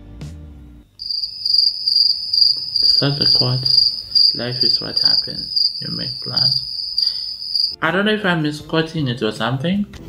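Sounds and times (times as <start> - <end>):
crickets chirping: 1.0 - 7.8.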